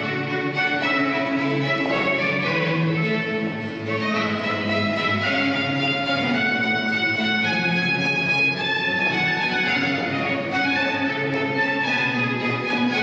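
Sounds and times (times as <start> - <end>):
baroque string music over loudspeaker: 0.0 - 13.0.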